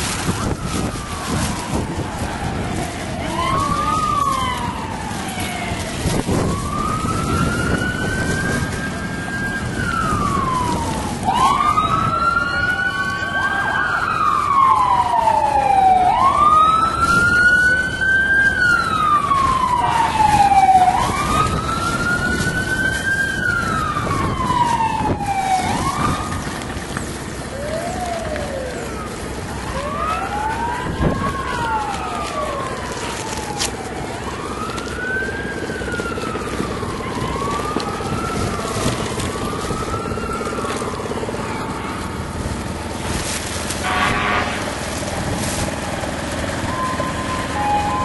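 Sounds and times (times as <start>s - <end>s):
emergency siren wailing: 0.0s - 48.0s.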